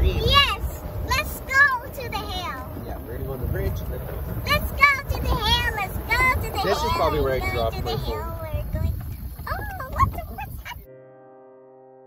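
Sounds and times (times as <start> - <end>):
wind rumbling on microphone: 0.0 - 10.9
child squealing: 9.5 - 10.9
soft electric piano music: 10.8 - 12.0.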